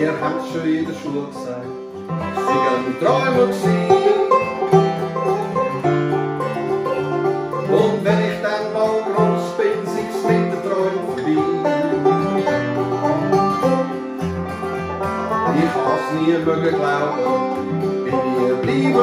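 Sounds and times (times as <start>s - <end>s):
acoustic guitar: 0.0s - 19.0s
banjo: 0.0s - 19.0s.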